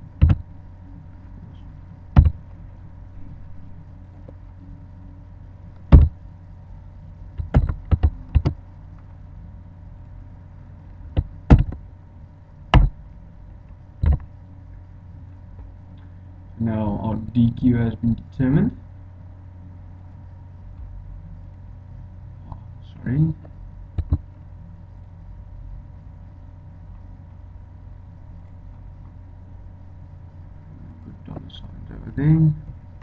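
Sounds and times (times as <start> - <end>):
low electrical hum: 0.0 - 33.0
keyboard and mouse clicks: 7.4 - 8.6, 14.0 - 14.3, 24.0 - 24.2.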